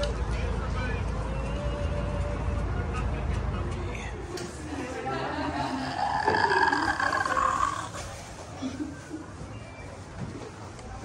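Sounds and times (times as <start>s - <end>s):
drawn-out roar-like cry: 5.8s - 8.0s.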